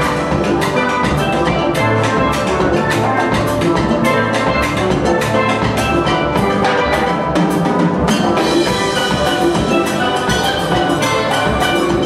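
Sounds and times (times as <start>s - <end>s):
drum kit and percussion: 0.0s - 12.0s
steel band playing: 0.0s - 12.0s.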